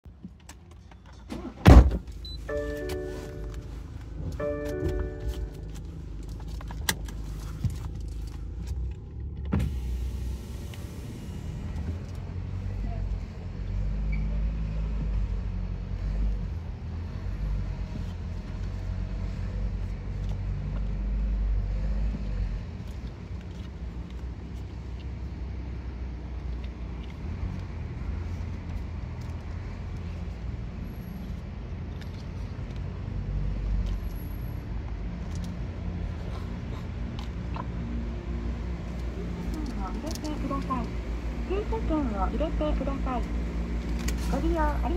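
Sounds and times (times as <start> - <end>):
car engine and tyres rumbling: 0.0 - 44.9.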